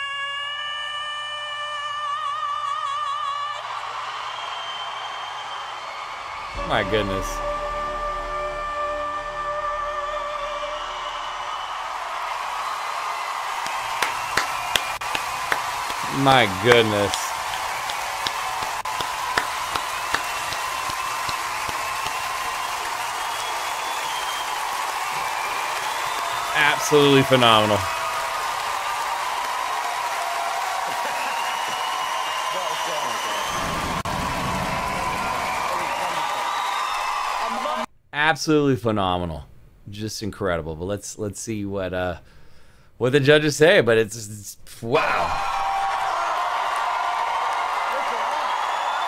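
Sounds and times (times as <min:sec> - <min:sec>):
audience applause: 0:03.1 - 0:07.4, 0:10.6 - 0:37.9, 0:45.1 - 0:49.0
faint whistles: 0:04.3 - 0:06.0, 0:10.7 - 0:12.0, 0:23.0 - 0:26.6, 0:31.1 - 0:34.0
sharp hand claps close by: 0:13.6 - 0:16.1, 0:16.7 - 0:23.0.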